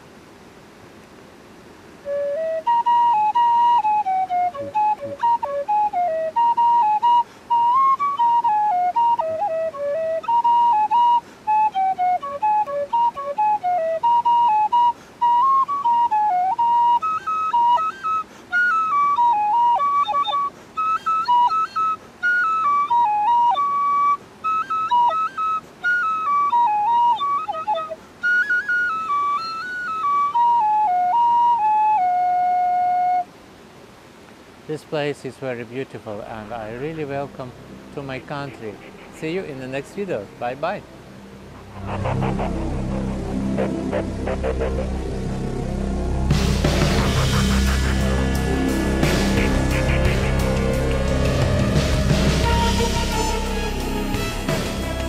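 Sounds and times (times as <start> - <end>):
tin whistle melody: 2.0 - 33.3, 41.6 - 55.0.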